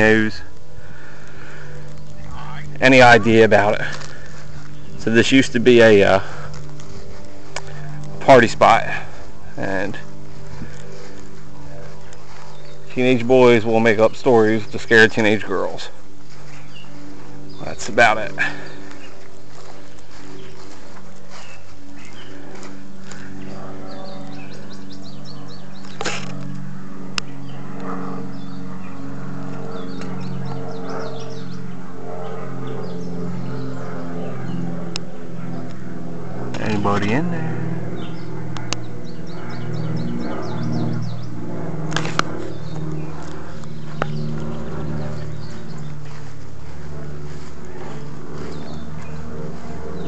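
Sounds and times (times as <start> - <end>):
low engine drone: 0.0 - 50.0
low hum: 0.0 - 50.0
small birds chirping: 0.0 - 50.0.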